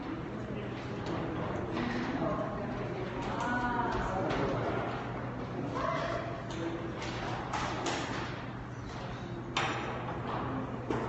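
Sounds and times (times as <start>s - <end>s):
faint audience noise: 0.0s - 11.0s
low hum of a hall: 0.0s - 11.0s.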